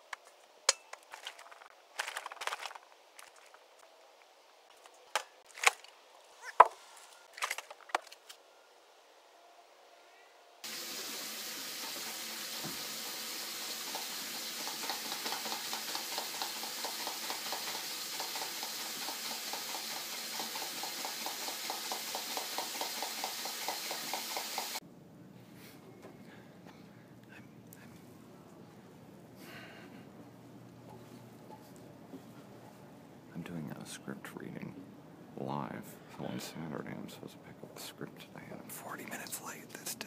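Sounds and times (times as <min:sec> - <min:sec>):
milk frother pumping: 0:10.6 - 0:24.8
steady hiss: 0:10.6 - 0:24.8.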